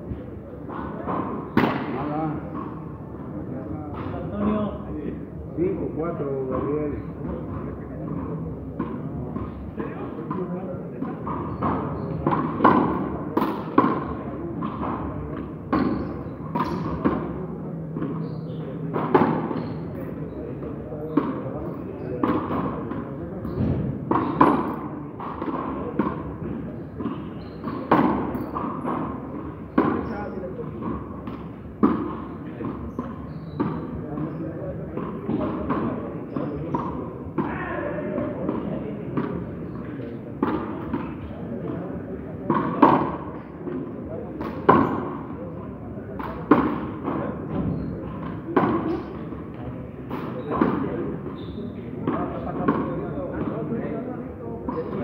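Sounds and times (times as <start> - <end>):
ball hitting walls: 0.1 - 2.3, 11.0 - 17.4, 21.0 - 43.5.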